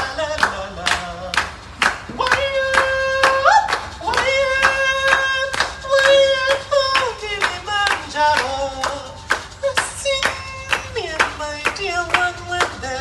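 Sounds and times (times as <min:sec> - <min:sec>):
steady hand-clapping: 0:00.0 - 0:12.9
person singing long notes: 0:02.1 - 0:13.0.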